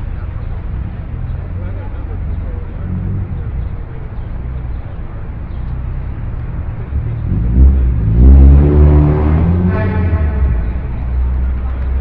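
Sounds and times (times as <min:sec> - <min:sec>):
idling engines rumbling: 0:00.0 - 0:12.0
car engine revving: 0:05.6 - 0:12.0.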